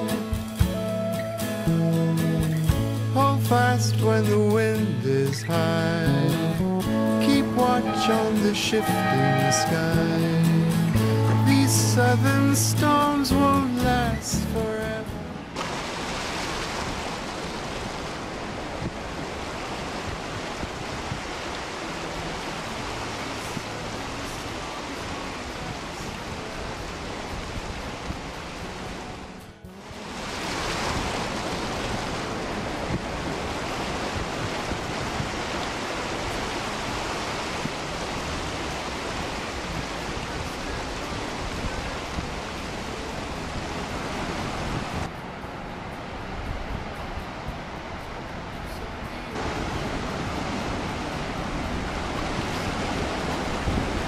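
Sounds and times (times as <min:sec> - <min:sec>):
surf breaking on rocks: 0:07.2 - 0:29.0, 0:29.8 - 0:45.1, 0:47.1 - 0:54.0
wind on microphone: 0:16.1 - 0:29.1, 0:30.0 - 0:54.0.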